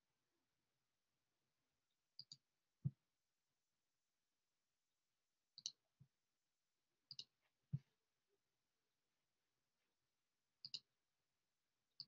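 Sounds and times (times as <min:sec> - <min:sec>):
computer mouse clicks: 0:02.2 - 0:02.4, 0:05.6 - 0:05.8, 0:07.1 - 0:07.4, 0:10.6 - 0:10.9.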